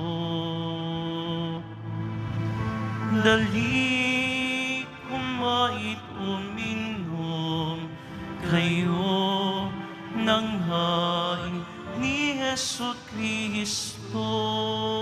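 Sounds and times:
person singing a slow hymn: 0:00.0 - 0:02.0, 0:02.8 - 0:15.0.

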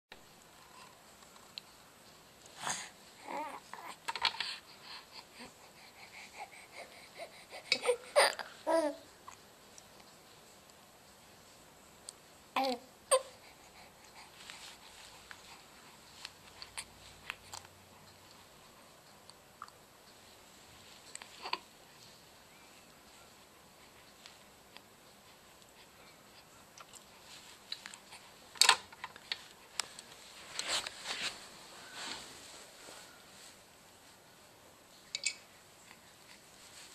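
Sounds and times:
baby cooing: 0:03.2 - 0:04.0, 0:07.1 - 0:09.1, 0:12.6 - 0:13.4.

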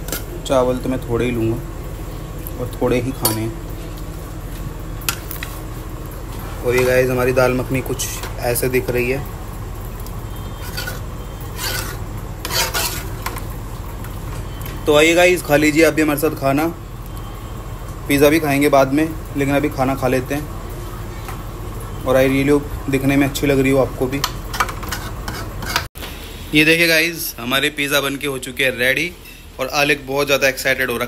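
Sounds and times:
metal ladle scraping a pot: 0:10.5 - 0:13.4, 0:24.5 - 0:25.9.

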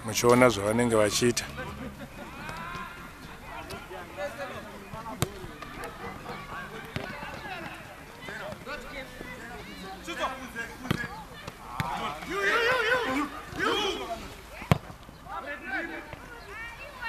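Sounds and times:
distant players shouting: 0:00.5 - 0:17.0
football being kicked: 0:06.8 - 0:08.7, 0:10.8 - 0:12.0.

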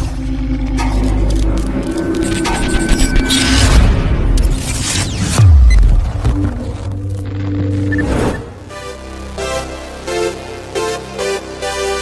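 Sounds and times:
deep steady drone: 0:00.0 - 0:05.1
crackling glitch noise: 0:00.0 - 0:08.7.

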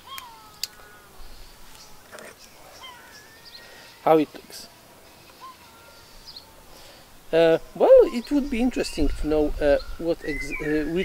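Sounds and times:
faint animal calls: 0:00.0 - 0:04.4, 0:05.3 - 0:07.0.

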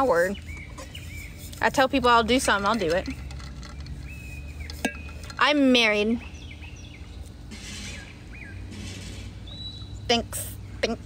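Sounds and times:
bird chirp: 0:00.0 - 0:11.0.

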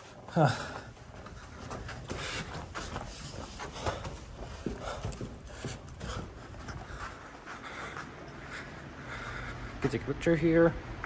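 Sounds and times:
footsteps on carpet: 0:00.8 - 0:08.6.

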